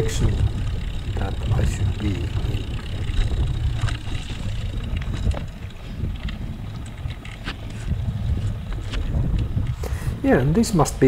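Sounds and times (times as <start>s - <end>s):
bike tyres rolling on dirt: 0.0s - 11.0s
gravel and bike rattles: 0.0s - 11.0s
wind buffeting microphone: 0.0s - 11.0s.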